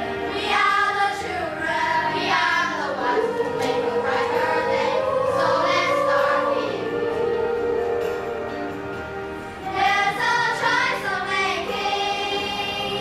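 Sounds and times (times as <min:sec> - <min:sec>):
children's choir singing: 0:00.0 - 0:13.0.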